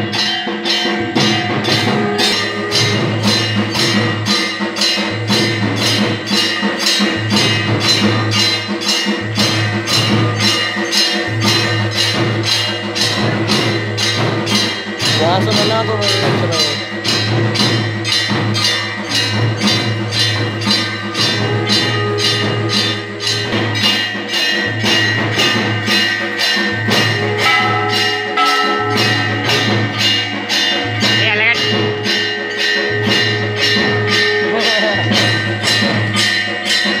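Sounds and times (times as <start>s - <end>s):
bells and percussion struck: 0.0s - 37.0s
continuous ringing bell tone: 0.0s - 37.0s
sustained held notes: 20.4s - 24.3s.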